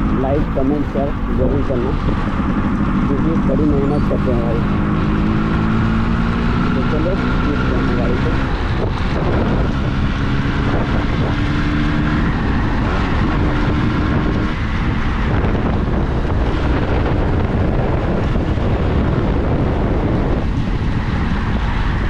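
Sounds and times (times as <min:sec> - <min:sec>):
two-stroke motorcycle engine running: 0:00.0 - 0:22.0
wind on microphone: 0:00.0 - 0:22.0.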